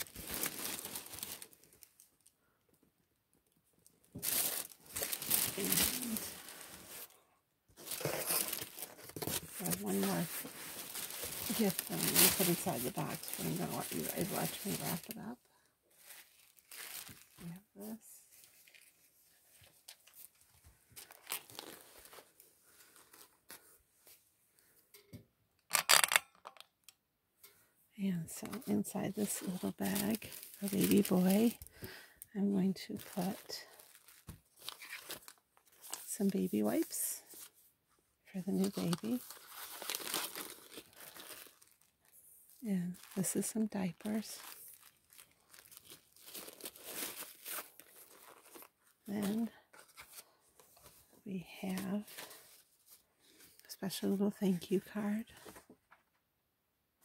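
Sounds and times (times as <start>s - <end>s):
fabric bag rustling: 0.0s - 1.8s, 4.2s - 7.2s, 7.8s - 15.2s, 15.9s - 17.5s, 28.5s - 31.6s
plastic packaging and paper crinkling: 0.0s - 2.3s, 3.8s - 7.2s, 7.8s - 24.2s, 28.3s - 37.6s, 38.4s - 56.1s.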